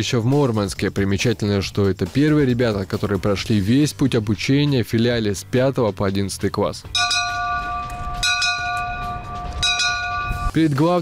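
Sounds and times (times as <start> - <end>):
brass bell ringing: 7.0 - 10.6.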